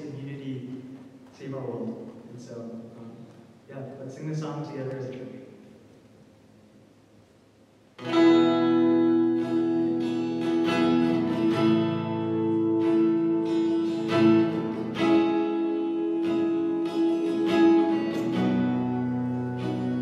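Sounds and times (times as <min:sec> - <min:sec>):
acoustic guitar strumming: 0:08.0 - 0:20.0.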